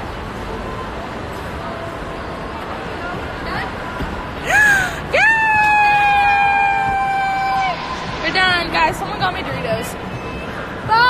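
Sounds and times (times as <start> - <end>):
girl screaming excitedly: 4.5 - 7.8.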